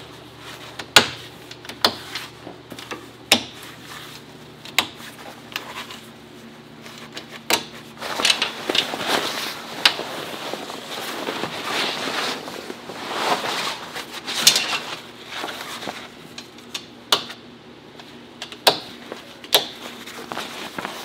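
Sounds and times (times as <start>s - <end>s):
tent fabric rustling: 7.9s - 16.2s, 19.9s - 21.0s.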